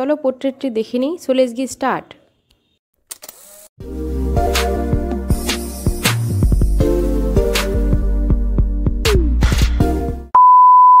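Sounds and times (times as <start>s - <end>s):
background music with beat: 3.8s - 10.3s.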